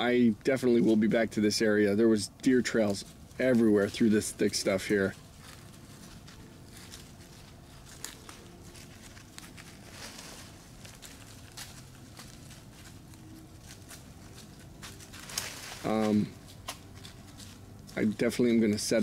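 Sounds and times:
crunches in snow and leaves: 2.5s - 19.0s.

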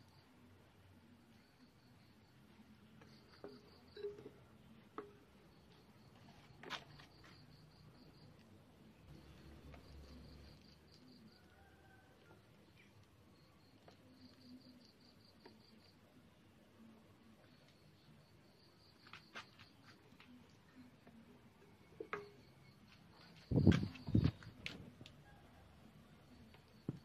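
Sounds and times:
faint cricket chirping: 0.0s - 27.0s
small knock with ringing: 22.0s - 22.6s.

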